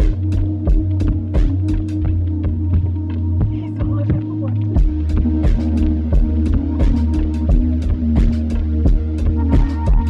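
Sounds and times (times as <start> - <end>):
deep kick drum: 0.0 - 10.0
low bass drone: 0.0 - 10.0.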